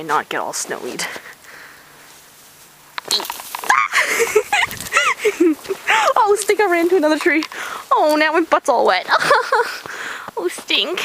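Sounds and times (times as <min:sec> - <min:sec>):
woman yelping and squealing: 0:03.1 - 0:05.2.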